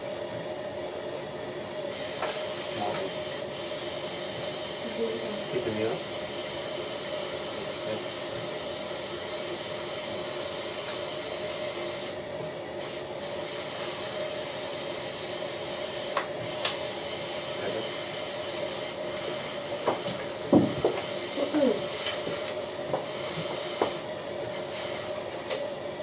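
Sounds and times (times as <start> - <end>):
dental suction hissing: 1.9 - 12.2, 12.8 - 25.2.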